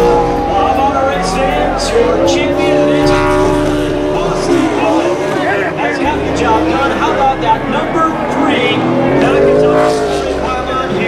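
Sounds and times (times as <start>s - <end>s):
crowd voices: 0.0s - 11.0s
race car engine revving: 0.0s - 11.0s.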